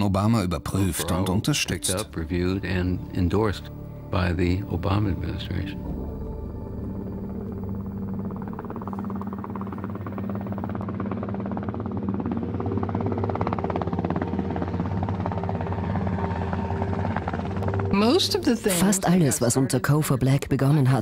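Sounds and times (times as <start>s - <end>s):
helicopter rotors beating: 0.0s - 21.0s
low engine drone: 0.7s - 20.3s.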